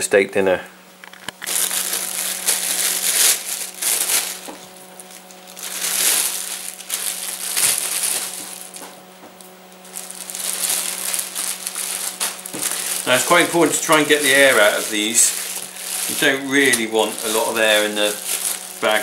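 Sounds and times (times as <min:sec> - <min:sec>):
faint steady hum: 0:00.0 - 0:19.0
plastic bags crinkling: 0:01.0 - 0:19.0.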